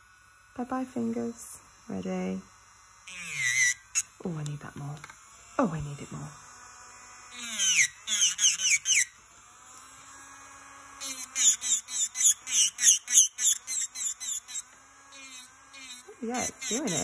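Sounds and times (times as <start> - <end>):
electric nail drill whining: 0.0 - 17.0.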